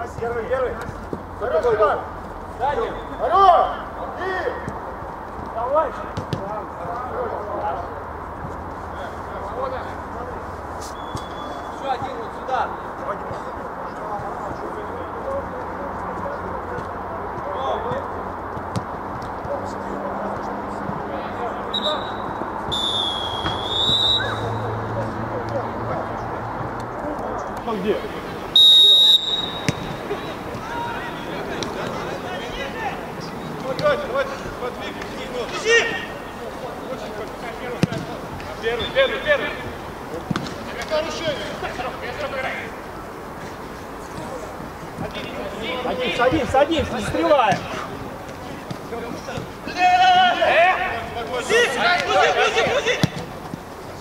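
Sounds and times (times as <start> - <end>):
players shouting: 0.0 - 4.8, 20.7 - 26.1, 27.0 - 53.8
referee whistle: 2.9 - 3.4, 10.9 - 11.8, 21.7 - 24.6, 28.5 - 30.0, 38.7 - 39.3
ball being kicked: 29.5 - 30.6, 37.8 - 38.2.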